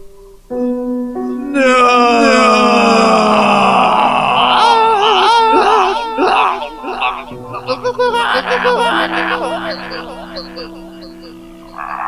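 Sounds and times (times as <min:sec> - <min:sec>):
man wailing in agony: 0:01.5 - 0:12.0.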